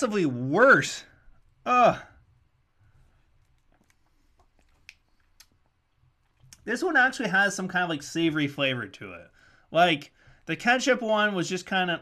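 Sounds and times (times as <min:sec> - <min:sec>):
wet mouth clicks sucking candy: 0:03.3 - 0:06.6.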